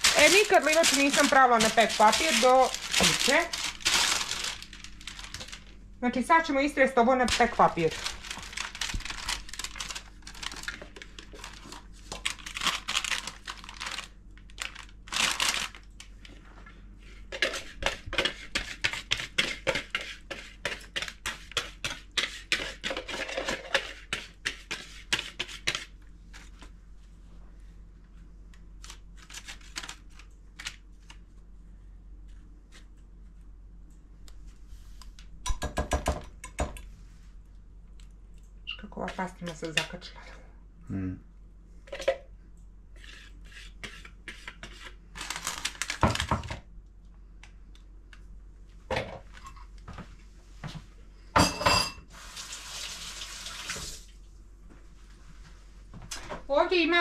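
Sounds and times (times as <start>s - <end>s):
baking paper crinkling: 0.0s - 5.8s, 7.2s - 16.4s, 28.7s - 31.5s, 43.0s - 46.5s.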